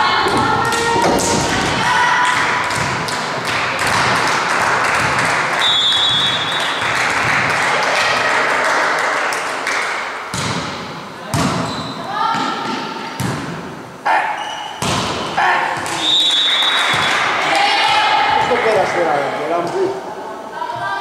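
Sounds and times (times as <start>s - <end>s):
people shouting in a hall: 0.0s - 2.8s, 15.3s - 19.3s
volleyball strikes: 0.2s - 8.2s, 10.3s - 13.8s, 14.8s - 18.5s
whistle blast: 5.6s - 6.8s, 16.0s - 17.2s.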